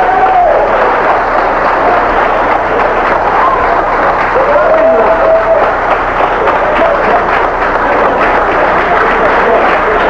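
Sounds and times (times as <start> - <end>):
audience clapping and cheering: 0.0 - 10.0.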